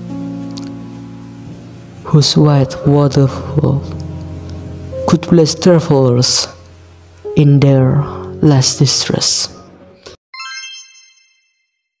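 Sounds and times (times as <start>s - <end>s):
bright chime ringing: 10.4s - 11.9s.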